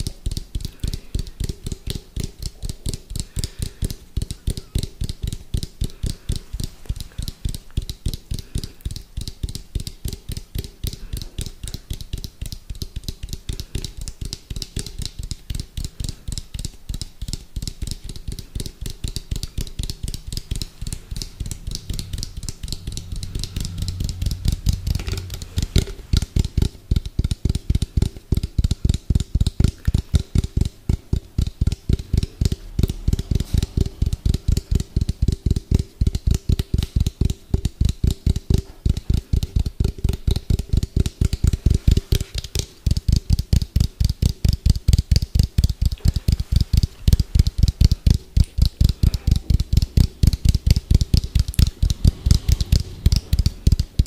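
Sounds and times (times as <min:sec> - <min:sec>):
fingertips tapping on hollow plastic: 0:00.0 - 0:54.0.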